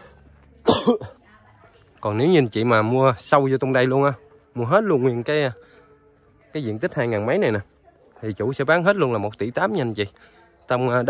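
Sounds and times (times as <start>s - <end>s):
person coughing: 0.6s - 1.2s.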